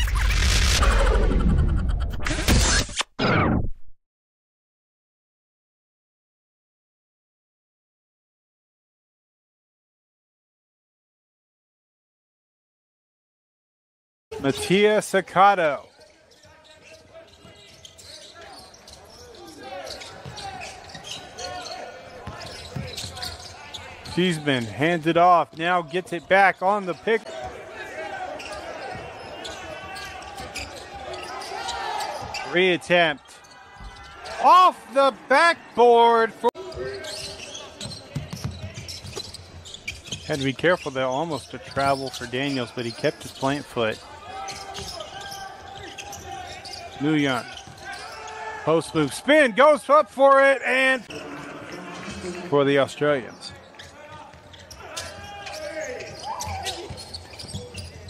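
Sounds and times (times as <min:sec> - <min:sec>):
sneakers squeaking on hardwood: 0:15.9 - 0:24.9, 0:25.5 - 0:32.6, 0:33.2 - 0:34.4, 0:36.6 - 0:48.6, 0:53.3 - 0:58.0.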